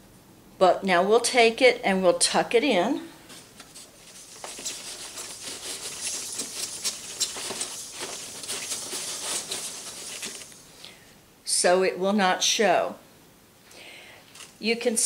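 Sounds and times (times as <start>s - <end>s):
fabric rustling: 3.3s - 10.8s.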